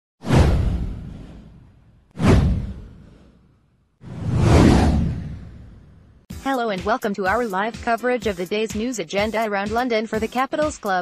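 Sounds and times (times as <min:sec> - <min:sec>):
whoosh with deep bass: 0:00.2 - 0:03.4, 0:04.0 - 0:06.3.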